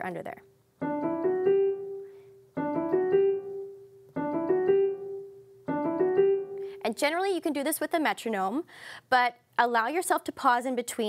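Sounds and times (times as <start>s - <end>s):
piano scale runs: 0.8s - 6.7s.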